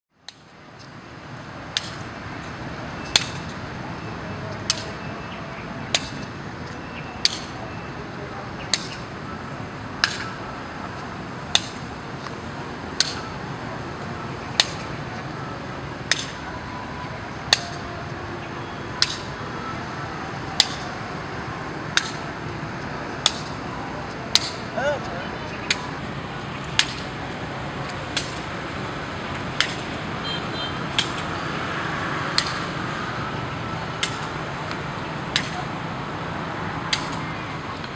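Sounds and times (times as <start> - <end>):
steady background noise: 0.1 - 37.9.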